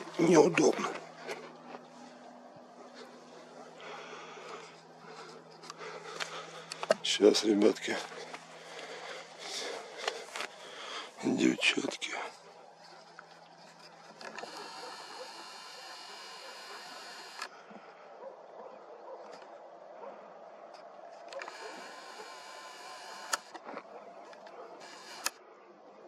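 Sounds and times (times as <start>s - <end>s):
lens zoom motor whirring: 14.2s - 17.5s, 21.3s - 23.6s, 24.8s - 25.4s
camera handling clicks: 23.2s - 23.6s.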